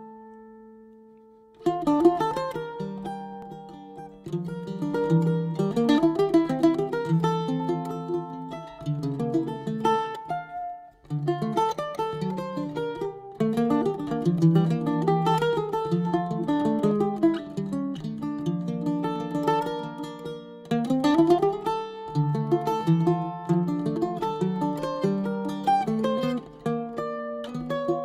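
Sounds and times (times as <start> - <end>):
mandolin playing: 0.0 - 28.0.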